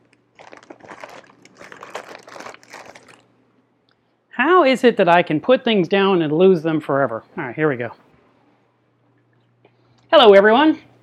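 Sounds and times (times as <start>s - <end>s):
rummaging rustling and crinkling: 0.0s - 3.2s.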